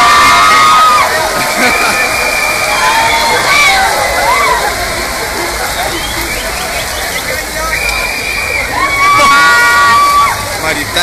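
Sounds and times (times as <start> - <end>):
people shouting and whooping: 0.0 - 10.6
heavy rain: 0.0 - 11.0
wind: 0.0 - 11.0.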